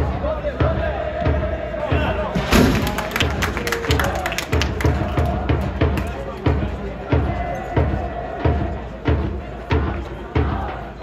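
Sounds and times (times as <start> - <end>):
crowd chanting: 0.0 - 11.0
drum beat: 0.0 - 11.0
sharp claps: 2.6 - 6.5.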